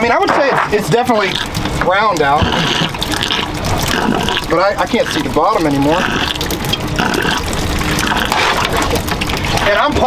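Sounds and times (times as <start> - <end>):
circulating pump: 0.0 - 10.0
water rushing and splashing: 0.0 - 10.0.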